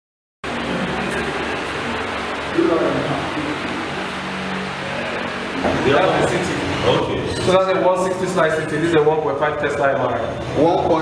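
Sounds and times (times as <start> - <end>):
low even hum: 0.4 - 11.0.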